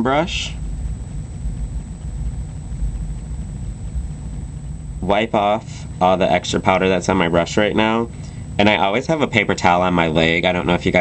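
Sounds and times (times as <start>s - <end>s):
low background rumble: 0.0s - 11.0s.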